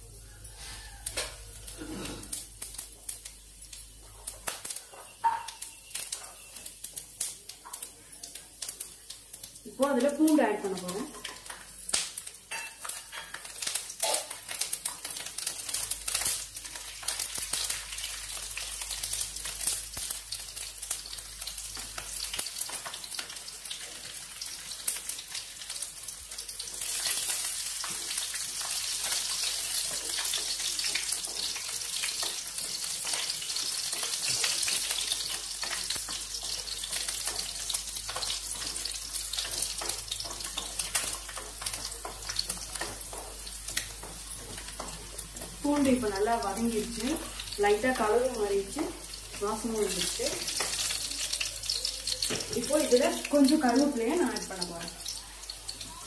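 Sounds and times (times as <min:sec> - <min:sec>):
garlic frying in hot oil: 0:00.0 - 0:56.0
wooden spatula stirring: 0:33.9 - 0:45.6.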